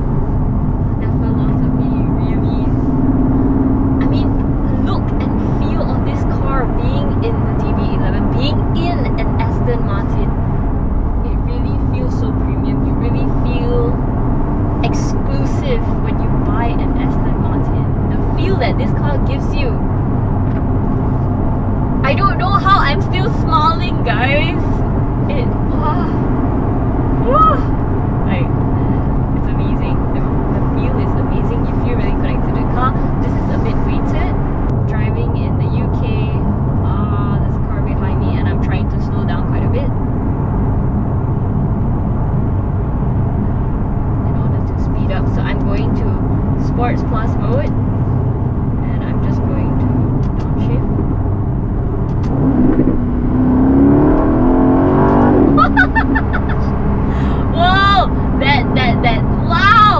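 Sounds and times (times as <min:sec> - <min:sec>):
car engine heard from inside cabin: 0:00.0 - 0:59.9.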